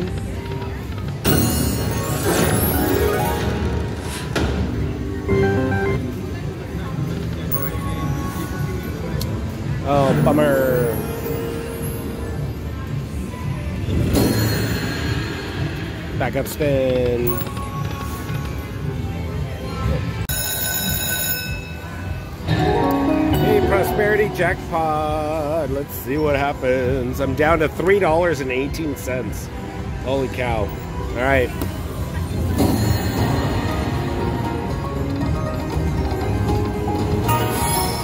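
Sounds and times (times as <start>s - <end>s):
slot machine electronic music: 0.0s - 13.1s, 13.9s - 18.8s, 20.2s - 26.5s, 30.4s - 38.0s
slot machine chimes: 1.2s - 4.0s, 5.2s - 6.3s, 7.5s - 8.6s, 9.9s - 12.4s, 14.0s - 15.7s, 20.3s - 25.1s, 32.3s - 38.0s
slot machine win fanfare: 1.2s - 4.1s, 5.2s - 6.2s, 22.4s - 24.8s, 37.2s - 38.0s.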